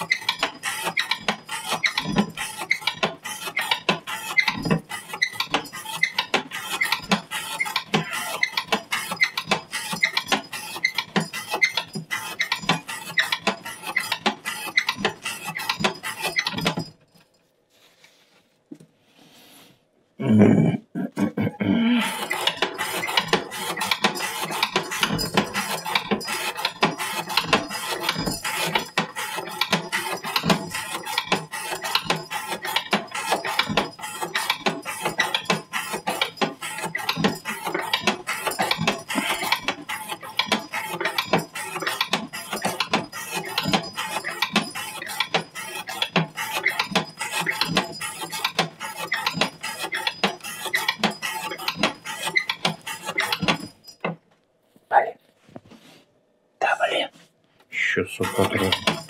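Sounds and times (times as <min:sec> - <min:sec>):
metallic clicking and clatter: 0:22.2 - 0:54.2, 0:58.2 - 0:59.0.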